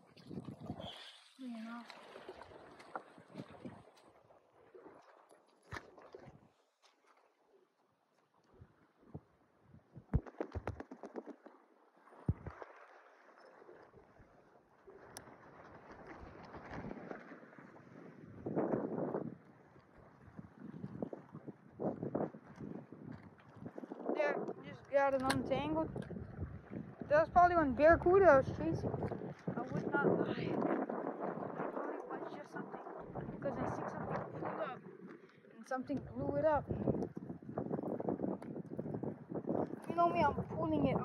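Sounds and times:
fishing rod and line clicking: 10.2 - 11.6, 25.2 - 26.1.

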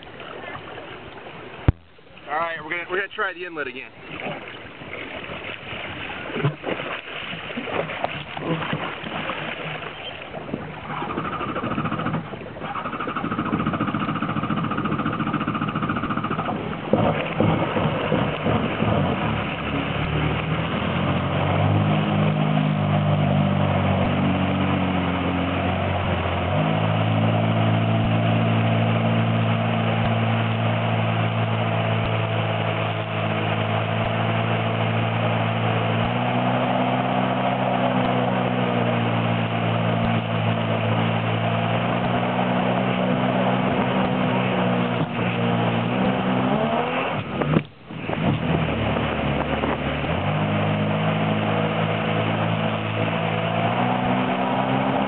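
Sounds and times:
water spray churning: 0.0 - 55.0
watercraft engine accelerating: 0.0 - 55.0.

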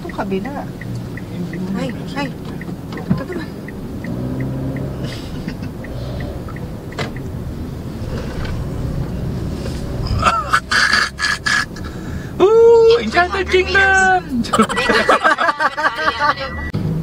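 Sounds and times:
turn signal relay ticking: 0.0 - 16.8
car engine and road noise: 0.0 - 17.0.

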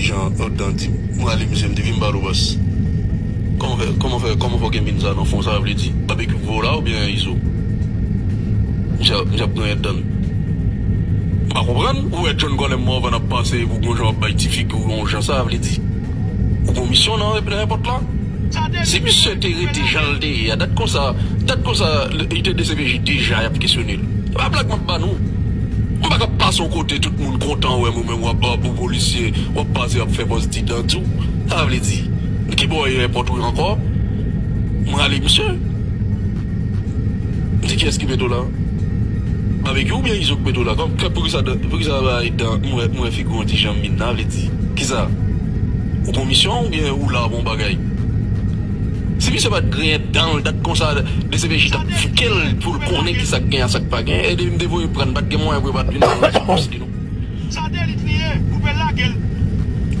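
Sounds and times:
low background rumble: 0.0 - 60.0
person speaking: 18.6 - 21.4, 55.8 - 59.2.

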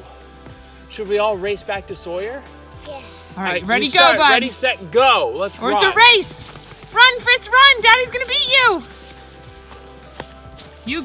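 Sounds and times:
quiet background music: 0.0 - 11.0
running footfalls on trail: 5.4 - 11.0.

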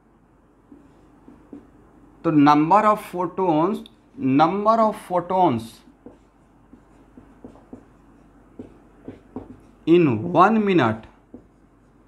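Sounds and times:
marker writing on whiteboard: 0.6 - 1.8, 4.0 - 12.0.

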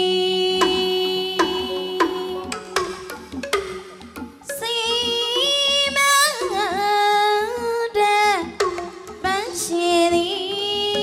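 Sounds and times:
woman singing: 0.0 - 3.0, 4.4 - 11.0
traditional percussion ensemble: 0.0 - 7.0, 8.4 - 10.2.

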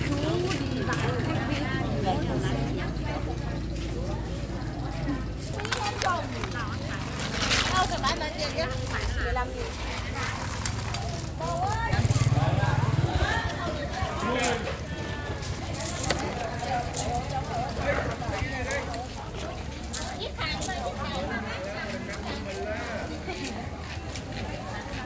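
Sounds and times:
women chatting: 0.0 - 25.0.

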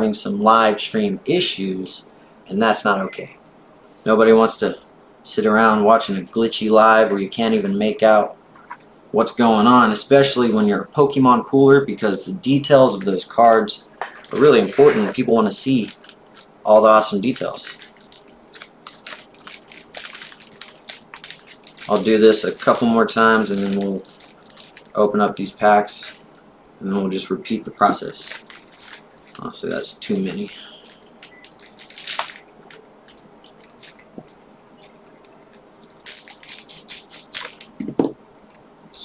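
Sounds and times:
foil wrappers crinkling: 14.1 - 26.4, 27.9 - 38.6.

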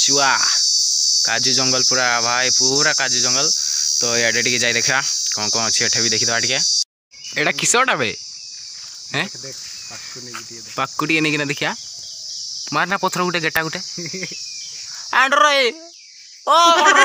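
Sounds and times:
man talking: 0.0 - 0.6, 1.3 - 6.6, 9.1 - 11.8
insects droning: 0.0 - 17.0.

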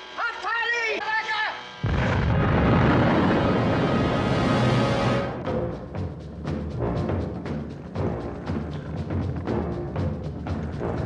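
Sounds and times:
explosion blast and rumble: 1.8 - 5.4.

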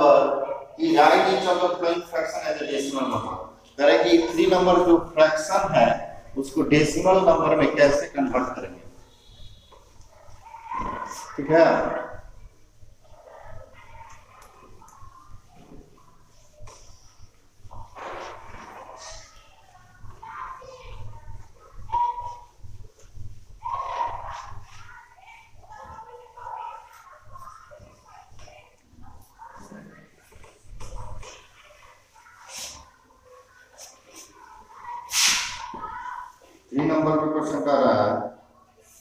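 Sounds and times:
marker scratching on whiteboard: 15.6 - 19.4
eraser rubbing on whiteboard: 17.8 - 19.3.

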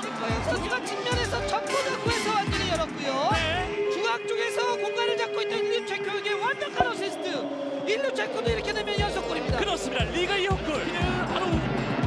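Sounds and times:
football commentator speaking: 0.0 - 11.7.

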